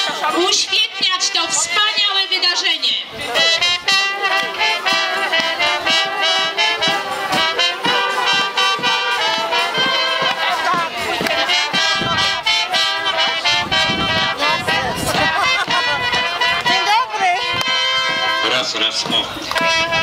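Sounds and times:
brass band music: 0.0s - 20.0s.

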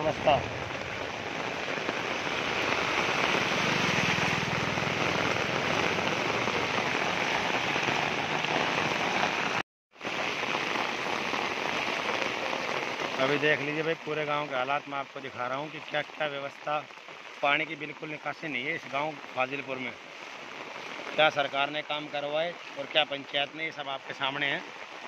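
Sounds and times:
heavy rain falling: 0.0s - 25.0s.

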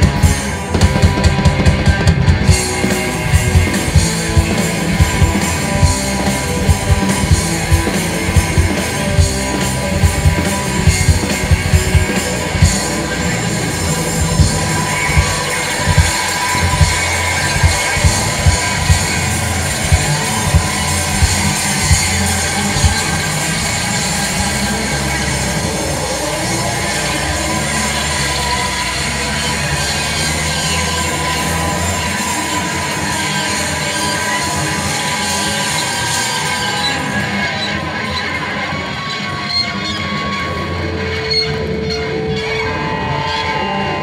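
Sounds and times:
steady high tone: 0.0s - 27.6s
distorted guitar: 0.0s - 44.0s
live rock band playing: 0.0s - 44.0s.

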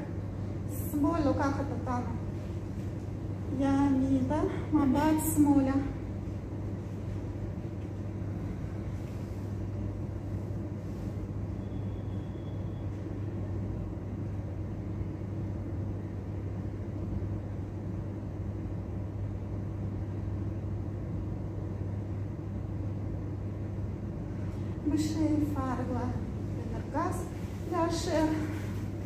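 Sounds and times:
room hum and rumble: 0.0s - 29.0s.

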